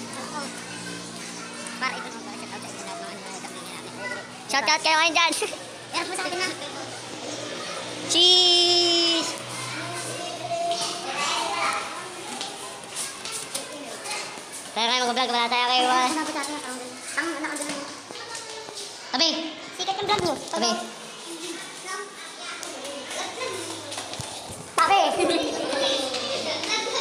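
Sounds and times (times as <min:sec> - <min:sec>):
children talking: 0:00.0 - 0:27.0
young voices chattering: 0:00.0 - 0:27.0.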